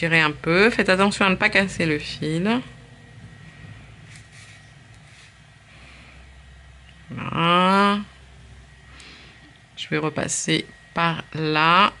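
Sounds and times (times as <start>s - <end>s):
low steady hum: 0.0s - 12.0s
hands rustling wool yarn: 4.0s - 5.5s.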